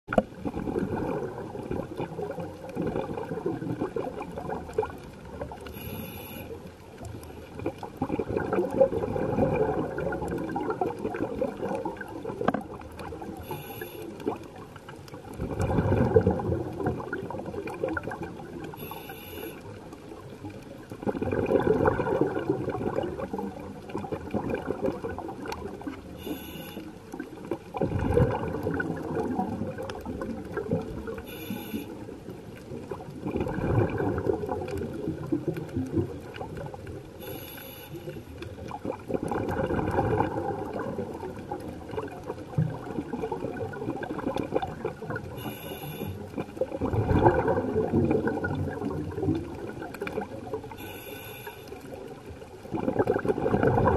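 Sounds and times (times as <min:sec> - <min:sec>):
exhaled bubbles rushing: 0:00.1 - 0:05.8, 0:06.9 - 0:19.0, 0:19.6 - 0:50.8, 0:51.7 - 0:53.9
regulator inhale hiss: 0:05.7 - 0:06.6, 0:13.4 - 0:14.2, 0:18.8 - 0:19.7, 0:26.2 - 0:27.0, 0:31.2 - 0:32.0, 0:37.2 - 0:38.3, 0:45.4 - 0:46.3, 0:50.7 - 0:51.8.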